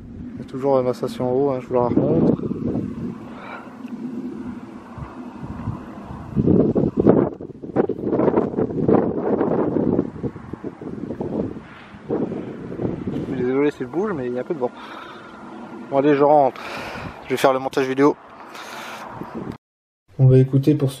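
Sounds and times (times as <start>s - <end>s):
wind buffeting microphone: 0.0s - 19.6s.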